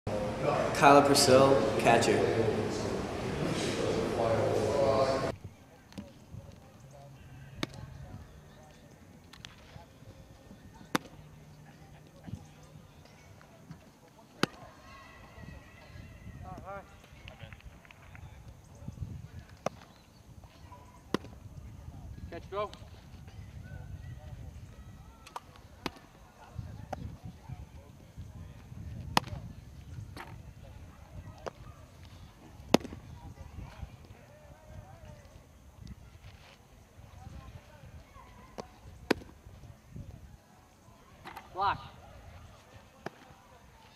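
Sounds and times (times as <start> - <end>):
baseball smacking into mitt: 10.9 - 11.2, 21.1 - 21.4, 29.1 - 29.4, 32.7 - 33.0, 38.5 - 39.3.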